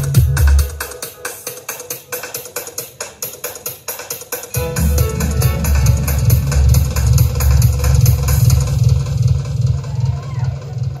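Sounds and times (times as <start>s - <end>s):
heavy bassline: 0.0s - 1.0s, 4.6s - 11.0s
loud dub music: 0.0s - 11.0s.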